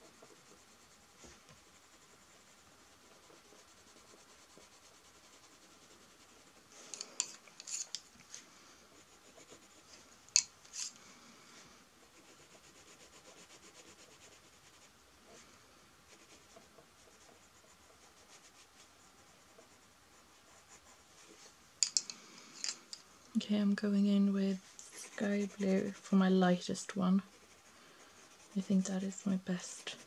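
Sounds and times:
pencil scratching on paper: 0.0s - 8.1s, 8.8s - 10.9s, 12.0s - 15.5s, 16.1s - 21.4s, 24.2s - 30.0s
wooden pencils clicking together: 6.9s - 8.1s, 21.8s - 23.0s.

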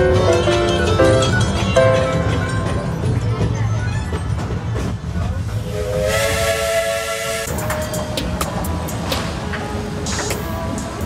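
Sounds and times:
train car rumbling on track: 0.0s - 11.0s
steam hissing: 5.4s - 11.0s
steam locomotive whistle: 5.6s - 8.0s.

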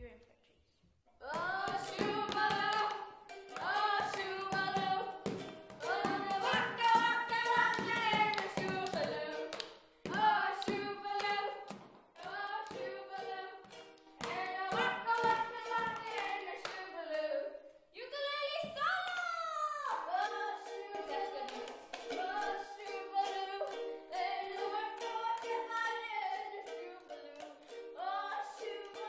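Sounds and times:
person singing: 1.2s - 11.6s, 12.2s - 17.5s, 18.2s - 29.0s
sharp hand claps: 1.4s - 12.1s.

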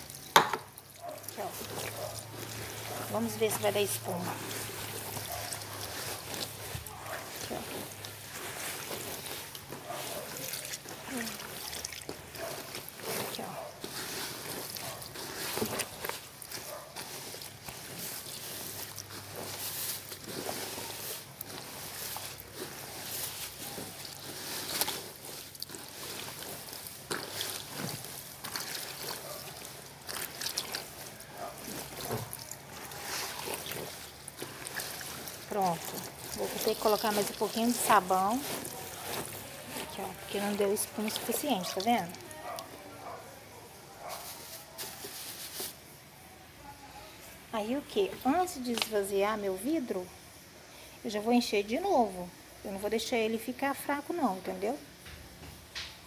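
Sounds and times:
laundry sloshing in water: 0.0s - 43.2s.

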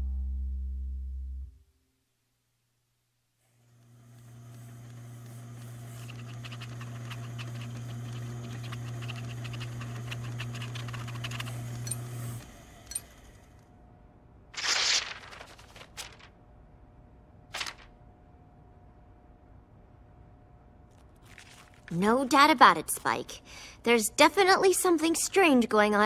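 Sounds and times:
machine electric hum: 3.4s - 22.8s
chart recorder pen scratching: 4.5s - 12.0s.

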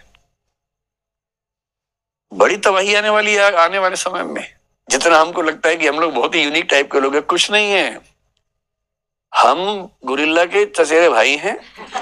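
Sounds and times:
man speaking: 2.3s - 8.1s, 9.3s - 11.8s.

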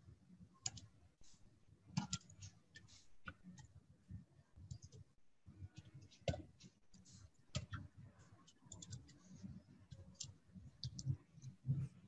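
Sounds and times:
keyboard and mouse clicks: 0.6s - 0.9s, 4.6s - 5.0s, 7.5s - 7.9s, 8.6s - 9.2s, 9.9s - 11.6s.

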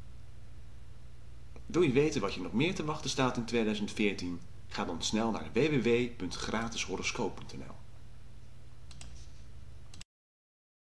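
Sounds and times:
low hum and hiss: 0.0s - 10.0s
faint clicks: 8.9s - 9.3s.

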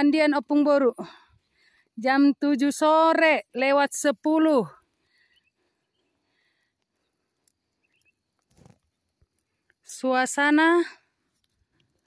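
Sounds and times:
faint high chirps: 5.0s - 8.4s.

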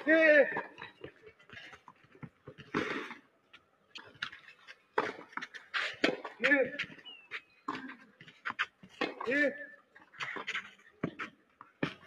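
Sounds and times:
footsteps on clay: 0.0s - 9.4s.

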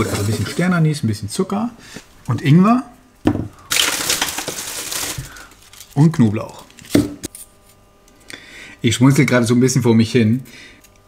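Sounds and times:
garlic skin crackling: 3.7s - 6.9s.

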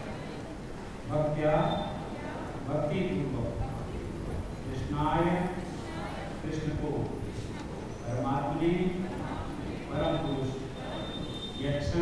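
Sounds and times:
man reading aloud: 1.1s - 1.9s, 2.6s - 3.7s, 4.6s - 10.7s, 11.6s - 12.0s.

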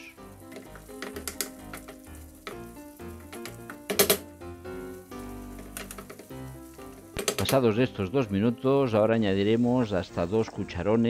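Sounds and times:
onion mixture sizzling: 0.0s - 10.8s
background music: 0.0s - 11.0s.

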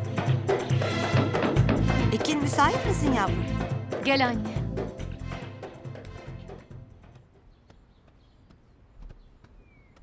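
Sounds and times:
faint footsteps: 5.7s - 10.0s.

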